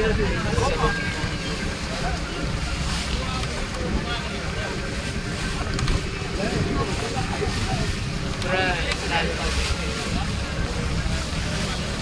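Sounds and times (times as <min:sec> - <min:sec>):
boat engine running: 0:00.0 - 0:12.0
faint voices: 0:00.0 - 0:12.0
wind and water noise: 0:00.0 - 0:12.0.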